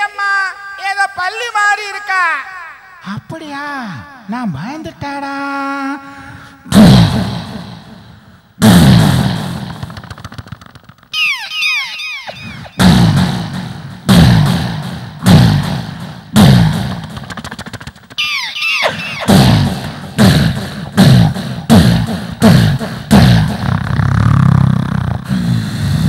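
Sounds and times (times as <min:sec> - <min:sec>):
vocal gunfire blasts: 0:06.7 - 0:10.6, 0:11.2 - 0:24.5
vocal falling whistles: 0:09.9 - 0:13.2, 0:17.4 - 0:22.7.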